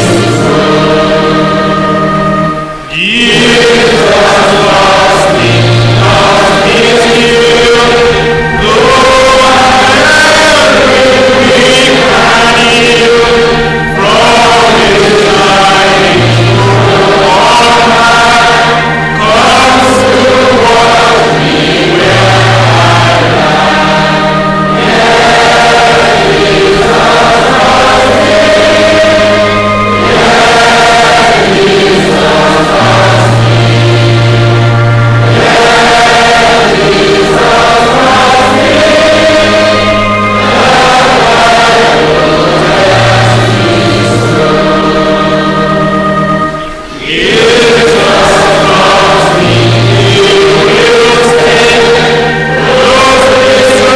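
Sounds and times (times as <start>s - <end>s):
choir singing gospel song: 0.0s - 53.9s
instrumental accompaniment bass notes: 0.0s - 53.9s.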